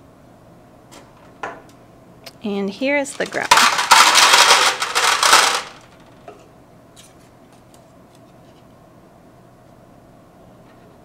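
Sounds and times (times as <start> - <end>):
pebbles clattering into metal pan: 3.1 - 6.0.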